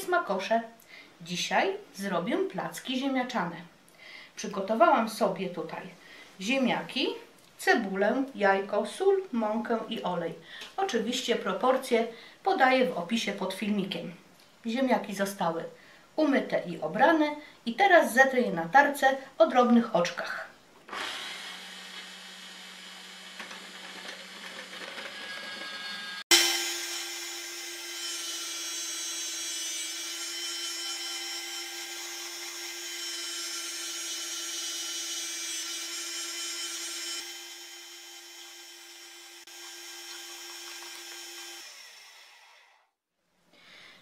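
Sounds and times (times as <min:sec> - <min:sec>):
food processor grating: 0:20.9 - 0:42.8.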